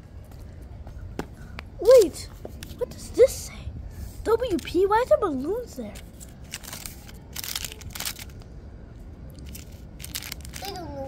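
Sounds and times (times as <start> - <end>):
paper and plastic crinkling: 5.9 - 8.4, 9.4 - 10.8.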